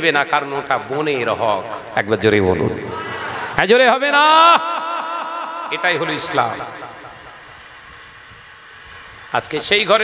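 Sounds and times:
background hiss and hum: 0.0 - 10.0.

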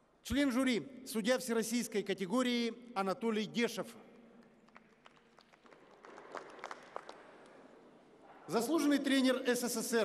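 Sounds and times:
scattered hand-clapping: 4.3 - 7.8.

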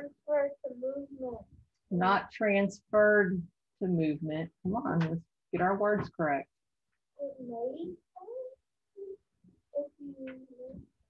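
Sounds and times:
person speaking over video call: 7.1 - 11.0.

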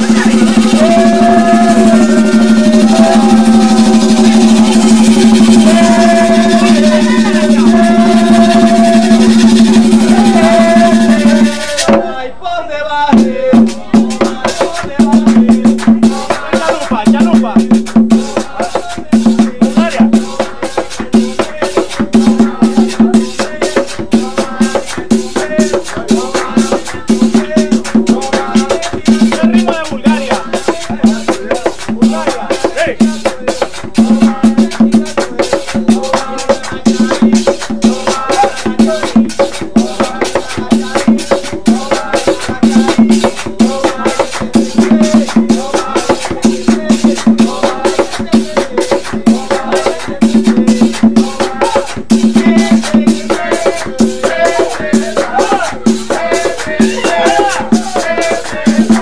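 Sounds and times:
hand drum rhythm: 0.0 - 12.2, 13.1 - 59.0
person singing: 0.0 - 59.0.

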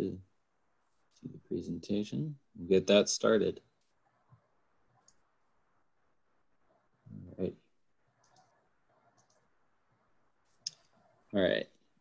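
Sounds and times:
computer mouse clicks: 3.8 - 5.3, 8.1 - 9.5.

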